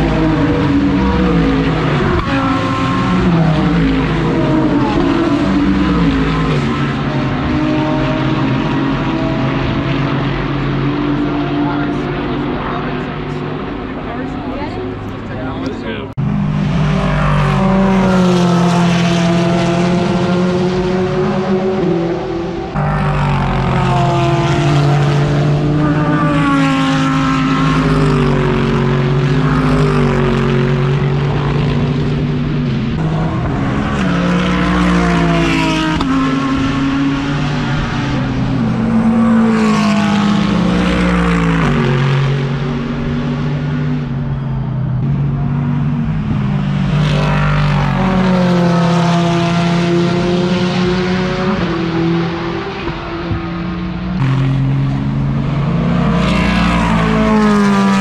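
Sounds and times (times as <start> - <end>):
race car engines at full throttle: 0.0 - 58.0.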